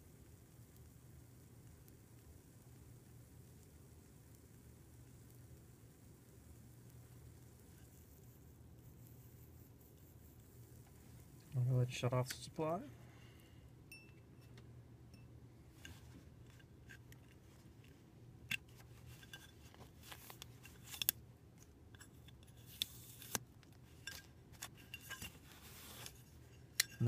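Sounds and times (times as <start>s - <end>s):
scratchy rustles: 22.5s - 26.5s.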